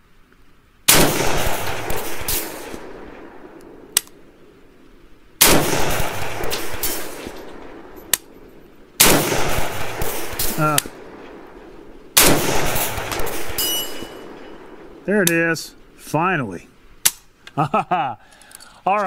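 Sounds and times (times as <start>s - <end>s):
rifle shots with echo: 0.9s - 4.6s, 5.4s - 15.4s.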